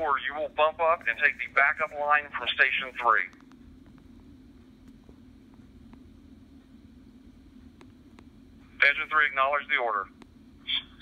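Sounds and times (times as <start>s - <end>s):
man speaking over scanner radio: 0.0s - 3.4s, 8.8s - 10.9s
faint low hum: 0.0s - 11.0s.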